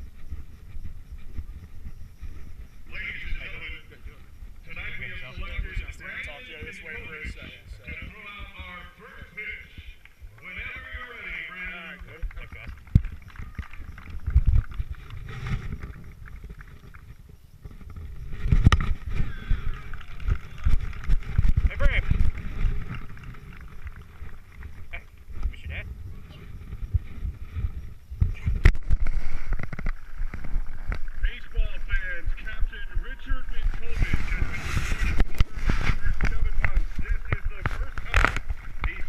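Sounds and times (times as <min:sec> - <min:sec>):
low wind rumble: 0:00.0 - 0:39.0
microphone handling noise: 0:00.0 - 0:39.0
camera handling rumble: 0:34.0 - 0:38.9.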